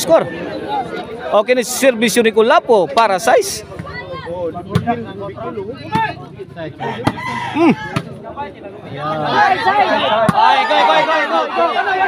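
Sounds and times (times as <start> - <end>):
crowd chatter: 0.0 - 12.0
rooster crowing: 6.8 - 8.0
ball being struck: 7.0 - 7.3, 7.9 - 8.2.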